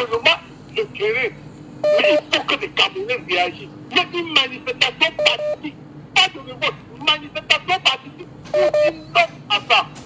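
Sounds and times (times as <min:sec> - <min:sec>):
person talking over telephone line: 0:00.0 - 0:10.0.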